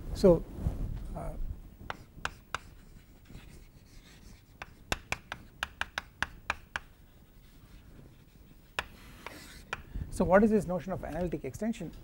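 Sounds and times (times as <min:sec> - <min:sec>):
chalk tapping on a blackboard: 0:01.8 - 0:10.0.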